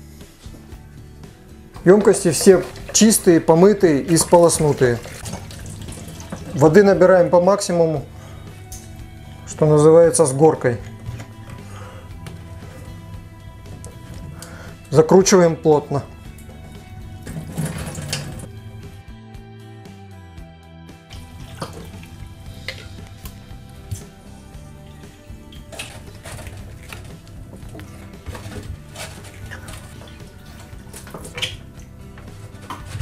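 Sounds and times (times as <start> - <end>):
background music: 0.0 - 33.0
tap water running into bottles: 1.7 - 7.0, 16.3 - 18.5, 21.1 - 24.2, 24.9 - 33.0
containers clinking: 1.8 - 6.7, 16.5 - 18.5, 21.2 - 23.4, 25.5 - 33.0.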